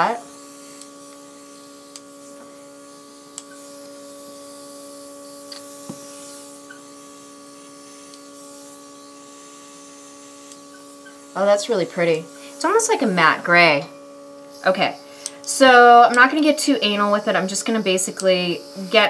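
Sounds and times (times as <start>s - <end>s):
air compressor humming: 0.0s - 19.0s
airbrush spraying hiss: 0.0s - 19.0s.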